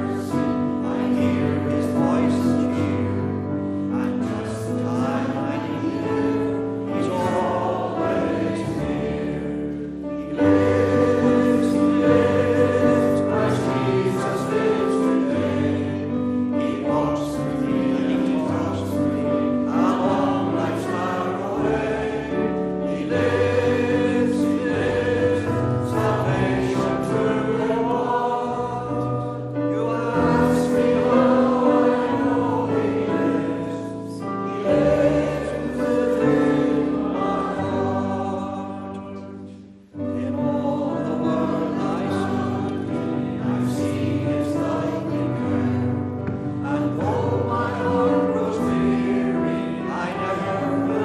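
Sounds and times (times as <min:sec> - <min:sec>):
congregation singing a hymn: 0:00.0 - 0:51.0
instrumental accompaniment: 0:00.0 - 0:51.0.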